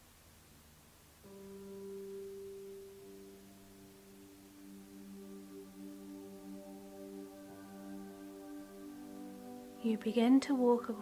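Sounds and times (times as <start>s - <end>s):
soft ambient music: 0.0s - 11.0s.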